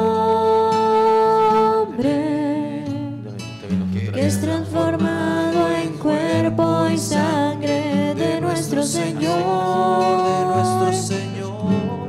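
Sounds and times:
woman singing a hymn: 0.0s - 3.2s, 4.2s - 11.3s
acoustic guitar: 0.0s - 12.0s.

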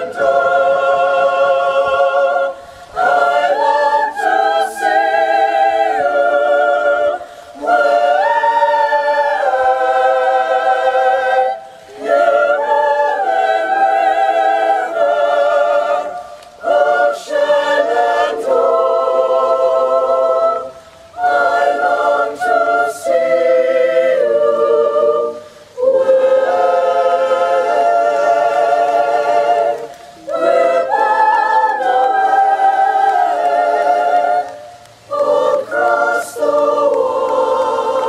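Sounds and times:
choir singing unaccompanied: 0.0s - 38.0s.

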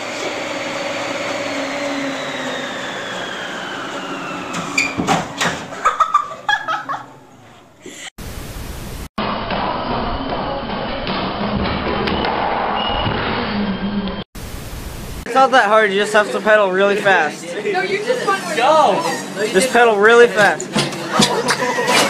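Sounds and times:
treadmill motor and belt hum: 16.0s - 22.0s.

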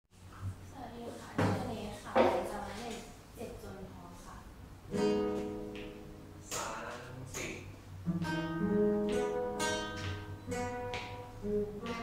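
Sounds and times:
classical guitar chord strum: 4.9s - 6.8s, 8.0s - 12.0s.

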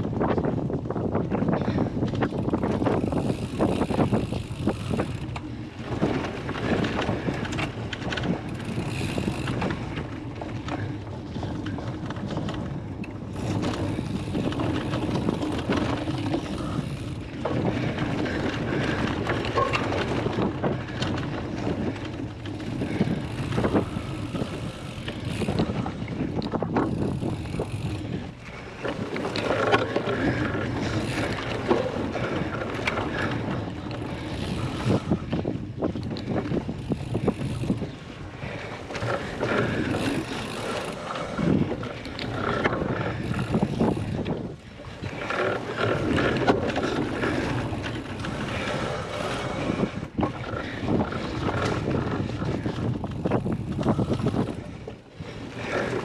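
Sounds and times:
bike clicking and rattling: 0.0s - 56.0s
wind on microphone: 0.0s - 56.0s.

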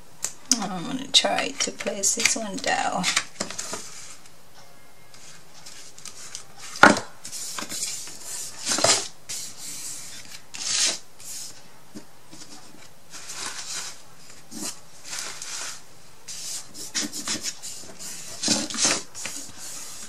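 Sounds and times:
hands rubbing paper on wood: 5.2s - 11.6s, 12.4s - 20.0s.

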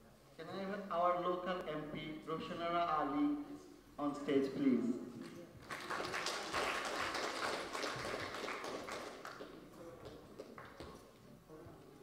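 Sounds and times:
audience applauding: 5.6s - 10.9s.

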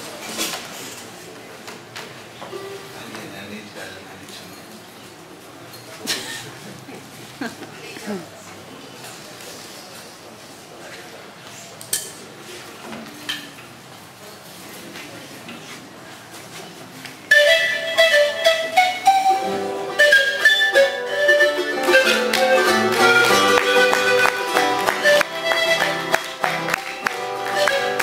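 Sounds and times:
charango strumming: 17.3s - 28.0s
panpipe melody: 17.3s - 28.0s.

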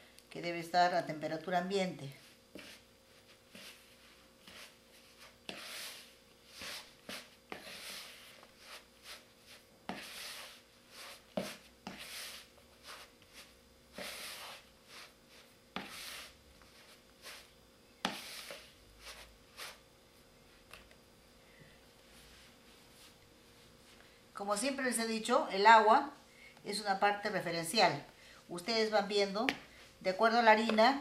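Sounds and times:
dough squishing and slapping: 2.3s - 19.8s.

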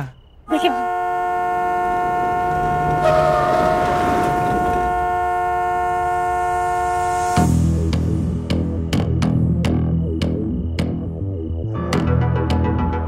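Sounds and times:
two-tone car horn blast: 0.5s - 7.5s.

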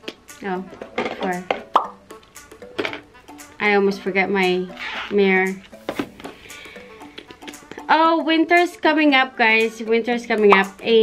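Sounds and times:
woman's voice: 0.4s - 1.5s, 3.6s - 5.6s, 7.8s - 11.0s.

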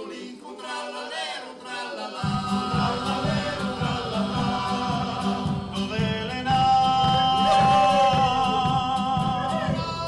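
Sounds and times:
male choir singing in harmony: 0.0s - 10.0s
acoustic guitar strumming: 2.1s - 10.0s.

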